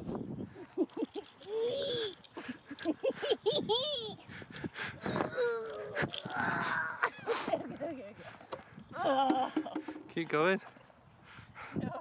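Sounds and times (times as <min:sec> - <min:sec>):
woman moaning cry: 0:05.2 - 0:07.2.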